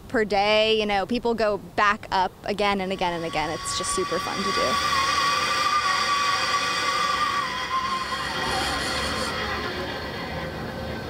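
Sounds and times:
zip line trolley whining: 0:02.8 - 0:11.0.

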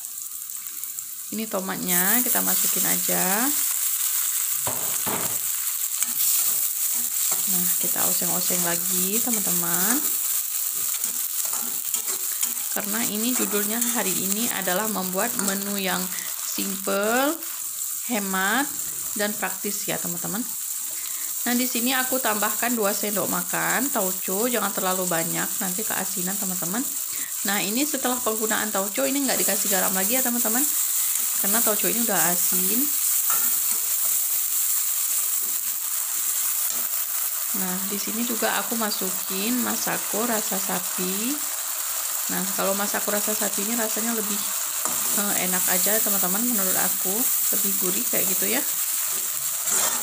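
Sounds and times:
food sizzling in hot oil: 0:00.0 - 0:50.0
spatula scraping pan: 0:04.7 - 0:08.0, 0:09.2 - 0:14.0, 0:49.1 - 0:50.0.

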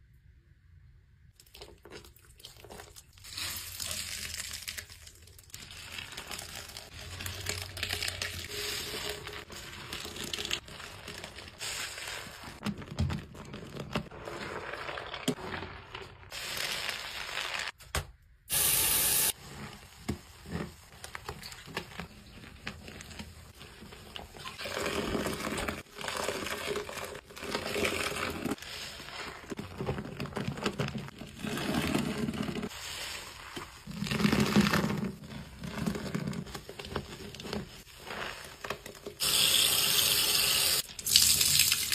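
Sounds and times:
soap foam crackling and squelching: 0:01.3 - 0:17.8, 0:18.5 - 0:41.9
soapy scrubbing: 0:01.5 - 0:17.7, 0:19.0 - 0:40.4
spray burst: 0:18.5 - 0:19.3
water splashing into a sink: 0:39.2 - 0:41.9.

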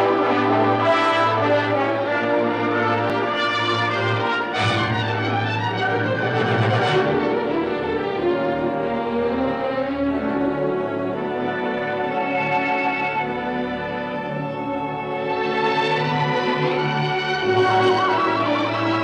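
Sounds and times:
orchestral film score chords: 0:00.0 - 0:19.0.

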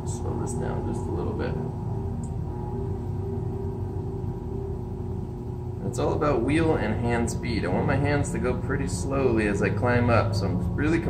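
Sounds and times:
potter's wheel motor hum: 0:00.0 - 0:11.0.

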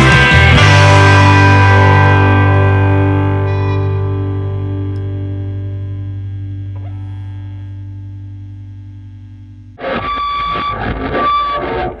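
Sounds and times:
low bass note: 0:00.0 - 0:09.8
distorted electric guitar chord: 0:00.0 - 0:12.0.

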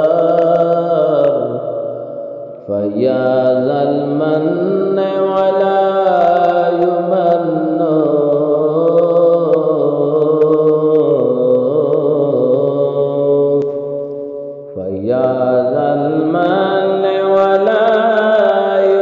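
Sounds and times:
person chanting melodically: 0:00.0 - 0:19.0.

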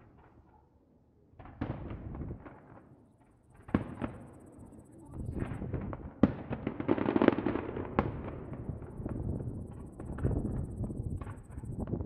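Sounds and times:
fireworks popping and crackling: 0:01.4 - 0:04.3, 0:05.1 - 0:12.0.

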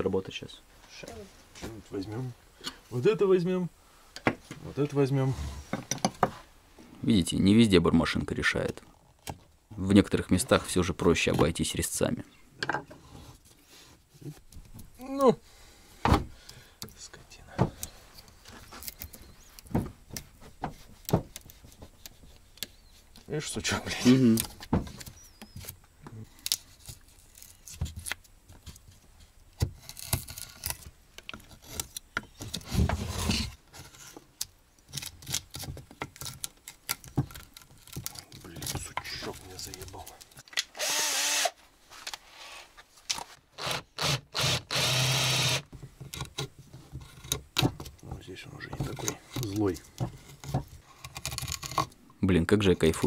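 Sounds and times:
chisel scraping wood: 0:20.4 - 0:25.7, 0:29.6 - 0:34.3, 0:43.6 - 0:47.7, 0:48.6 - 0:52.0.

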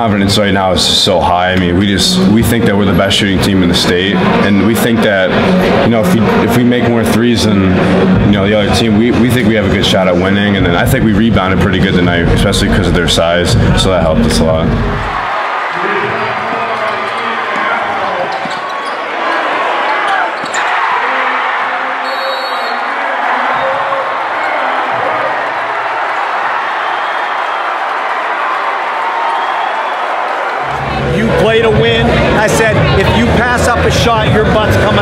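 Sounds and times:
crowd shouting and cheering: 0:00.0 - 0:35.0.

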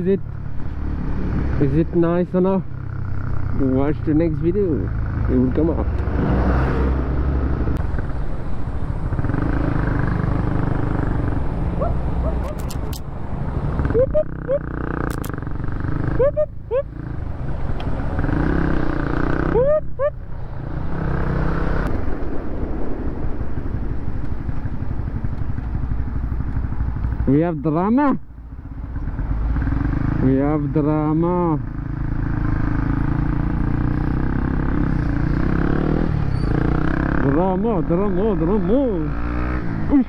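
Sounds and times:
motorcycle engine revving: 0:00.0 - 0:22.2, 0:28.5 - 0:40.0
short clicks: 0:15.1 - 0:15.4.

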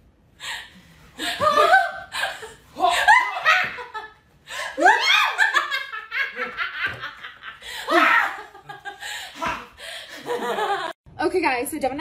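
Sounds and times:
woman laughing: 0:01.2 - 0:11.0.

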